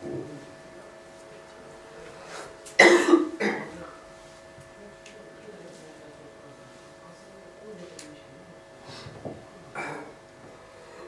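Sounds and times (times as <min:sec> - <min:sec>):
man coughing: 0:02.8 - 0:03.8.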